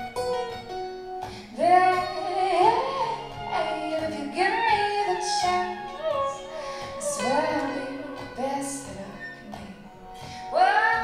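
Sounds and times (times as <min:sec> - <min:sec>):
strummed acoustic guitars: 0:00.0 - 0:11.0
woman singing: 0:01.5 - 0:11.0.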